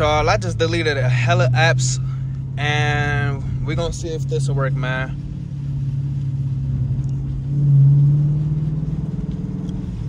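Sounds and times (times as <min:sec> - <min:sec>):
car engine accelerating from inside: 0:00.0 - 0:10.0.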